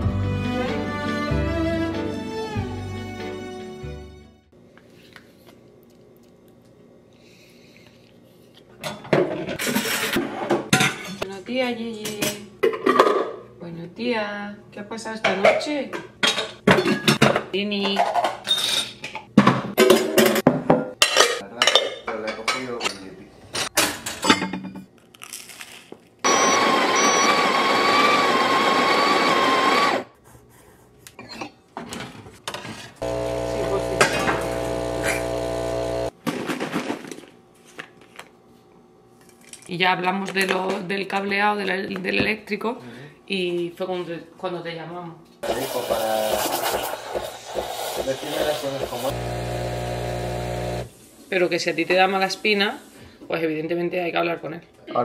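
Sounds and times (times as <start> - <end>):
electric coffee grinder grinding: 26.2 - 30.1, 33.0 - 36.2, 45.4 - 50.9
machine hum: 33.0 - 36.1, 49.1 - 51.0.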